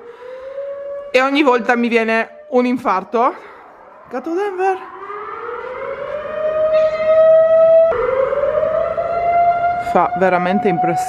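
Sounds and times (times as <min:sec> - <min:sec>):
warning siren wailing: 0:00.0 - 0:11.0.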